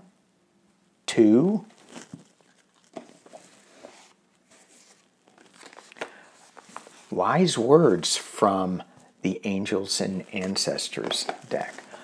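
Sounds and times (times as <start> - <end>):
cards being handled: 1.7 - 7.1, 10.1 - 12.0.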